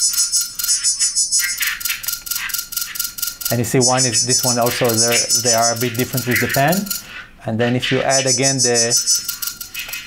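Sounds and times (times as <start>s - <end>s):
thin steady synth tone: 0.0s - 7.0s, 8.1s - 9.8s
synthesized insect chirring: 0.0s - 7.1s, 8.1s - 10.0s.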